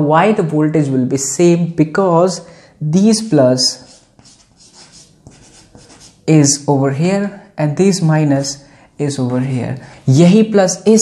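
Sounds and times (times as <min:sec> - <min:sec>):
chalk scratching on blackboard: 0:03.6 - 0:06.3.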